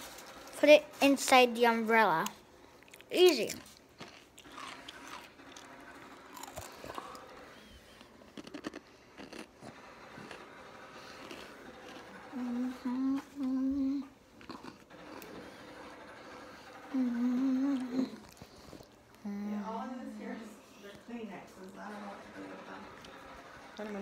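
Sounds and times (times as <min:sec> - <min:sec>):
girl humming: 0:12.3 - 0:14.2, 0:16.9 - 0:18.2.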